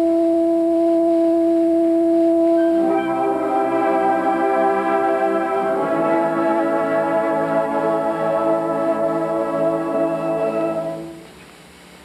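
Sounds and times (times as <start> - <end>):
concert band holding long note: 2.6 - 11.4.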